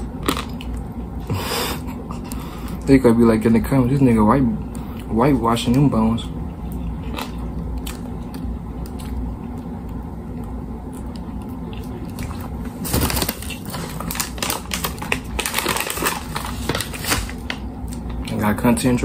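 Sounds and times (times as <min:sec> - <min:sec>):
steady low hum: 0:00.0 - 0:19.0
plastic bag crinkling: 0:12.8 - 0:17.6.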